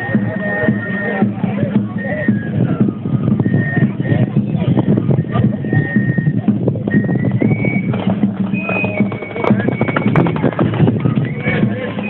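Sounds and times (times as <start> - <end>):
horse hoofbeats on dirt road: 7.3 - 12.0.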